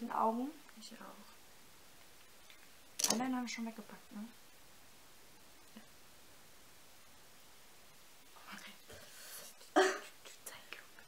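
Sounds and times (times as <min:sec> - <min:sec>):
woman whispering: 0:08.4 - 0:09.0, 0:10.2 - 0:11.0.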